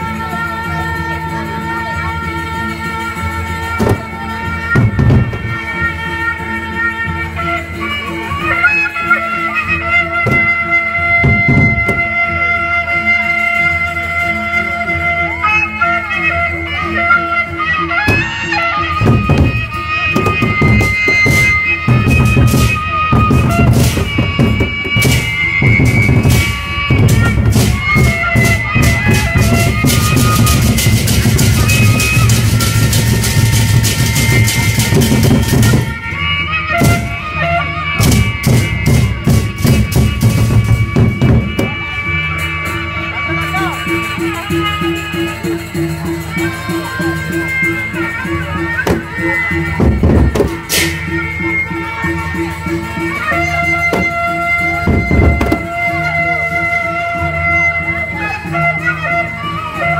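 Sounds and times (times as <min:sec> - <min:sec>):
wind instrument long notes: 0:00.0 - 0:59.9
fast barrel drum beating: 0:19.0 - 0:35.9, 0:49.8 - 0:50.9, 0:53.9 - 0:55.9.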